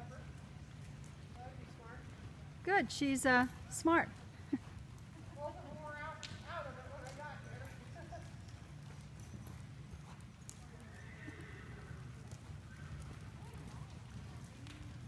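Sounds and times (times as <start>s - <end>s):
hoofbeats on soft ground: 0.0s - 15.0s
horse whinnying: 10.8s - 12.2s.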